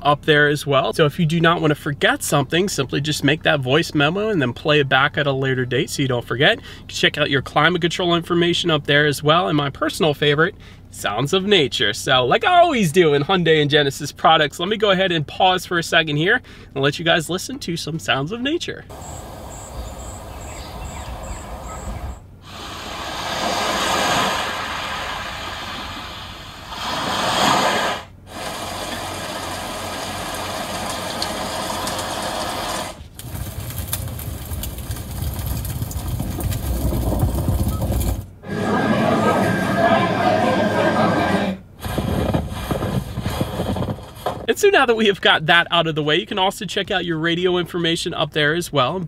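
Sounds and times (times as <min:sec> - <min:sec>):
nature soundscape through car speakers: 0:18.2 - 0:33.6.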